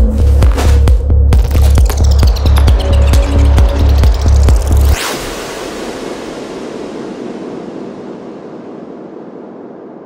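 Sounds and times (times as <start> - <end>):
synthesized noise wash: 2.0 - 10.0.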